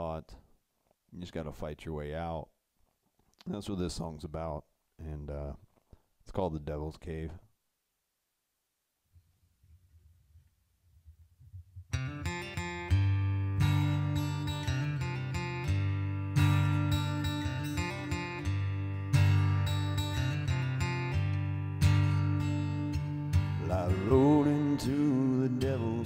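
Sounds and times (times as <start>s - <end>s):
acoustic guitar strumming: 11.9s - 26.0s
man singing: 23.6s - 26.0s.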